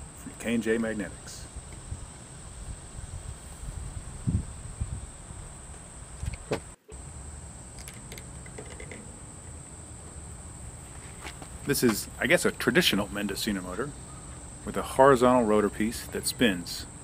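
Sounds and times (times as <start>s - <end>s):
low wind rumble: 1.0s - 7.6s
high-pitched insect drone: 4.2s - 17.0s.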